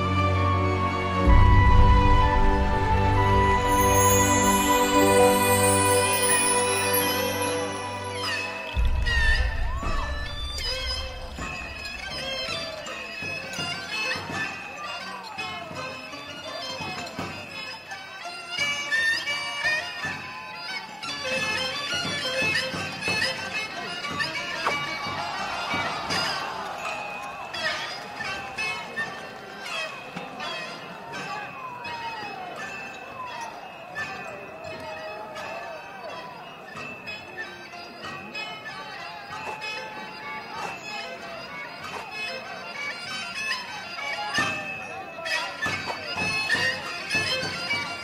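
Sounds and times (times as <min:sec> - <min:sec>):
shrill reed wind instrument melody: 0:00.0 - 0:48.0
sharp percussion strikes: 0:00.9 - 0:17.8, 0:19.8 - 0:41.2
sharp percussion strokes: 0:01.0 - 0:15.6.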